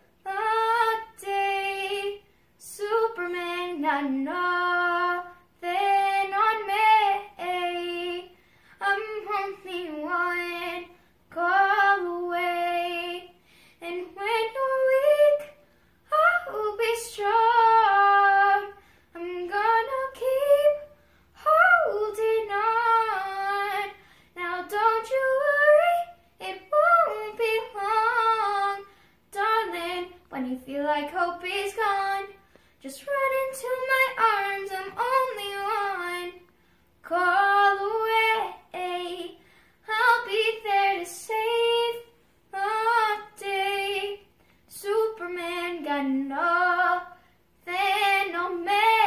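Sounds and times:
girl singing unaccompanied: 0:00.0 - 0:49.0.

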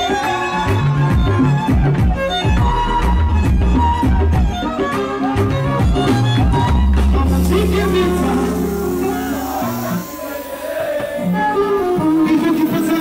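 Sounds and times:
loud backing track: 0:00.0 - 0:12.8
deep bass line: 0:05.4 - 0:10.4.

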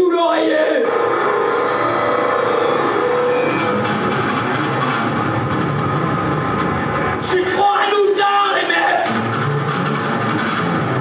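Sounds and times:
harsh synthesizer noise: 0:00.5 - 0:11.0.

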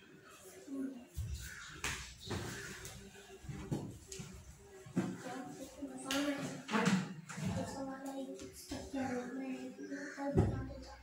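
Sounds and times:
young children chattering: 0:00.2 - 0:11.0.

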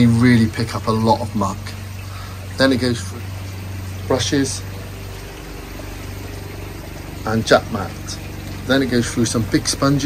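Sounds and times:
low mechanical hum: 0:00.0 - 0:10.0
water flowing through pond filter: 0:00.0 - 0:10.0.

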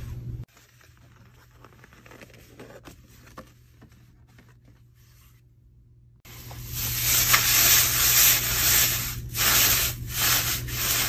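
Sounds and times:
shredded paper rustling: 0:06.3 - 0:11.0.

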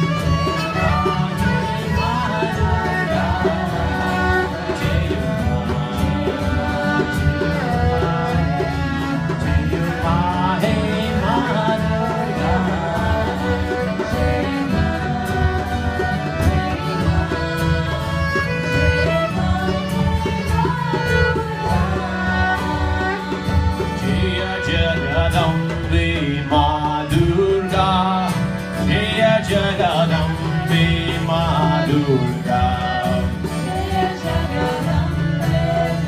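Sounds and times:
acoustic guitar strumming: 0:00.0 - 0:36.0
harmonium: 0:00.0 - 0:36.0
person singing: 0:00.0 - 0:36.0
violin: 0:00.0 - 0:36.0.

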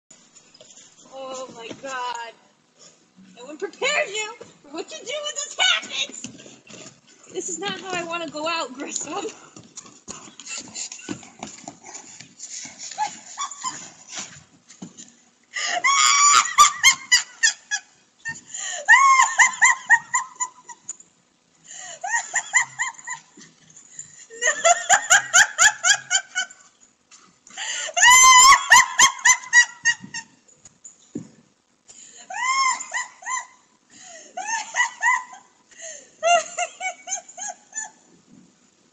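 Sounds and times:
woman laughing hard: 0:12.9 - 0:14.0, 0:15.6 - 0:21.0, 0:21.8 - 0:23.4, 0:24.2 - 0:26.7, 0:27.7 - 0:30.4, 0:32.3 - 0:38.1.

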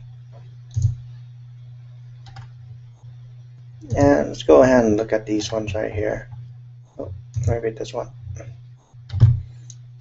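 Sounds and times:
low electrical hum: 0:00.0 - 0:10.0
computer mouse clicks: 0:00.7 - 0:01.0, 0:02.2 - 0:02.6, 0:07.3 - 0:07.6, 0:08.3 - 0:09.8.

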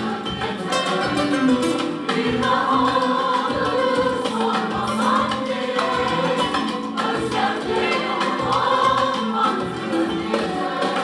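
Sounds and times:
guitar: 0:00.0 - 0:11.0
mixed choir singing: 0:00.0 - 0:11.0
violin: 0:00.0 - 0:11.0.

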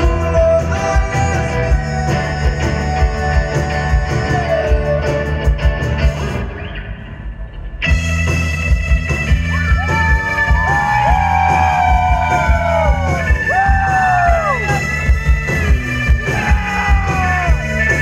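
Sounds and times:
rock band playing live: 0:00.0 - 0:18.0.

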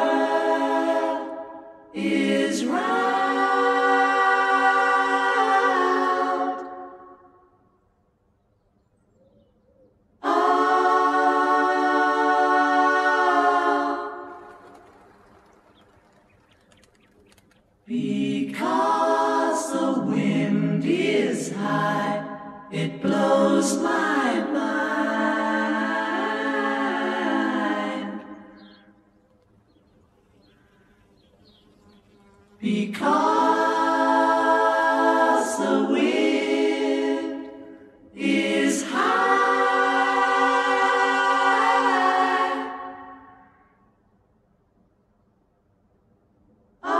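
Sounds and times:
group of voices singing a chord: 0:00.0 - 0:07.4, 0:10.2 - 0:14.5, 0:17.9 - 0:28.8, 0:32.6 - 0:43.6.

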